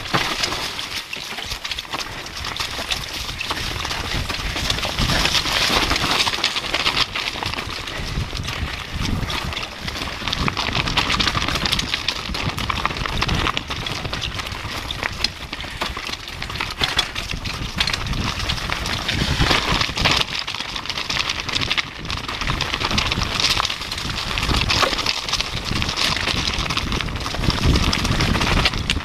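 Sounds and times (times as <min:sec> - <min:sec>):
mountain bike rattling over rocks: 0:00.0 - 0:29.0.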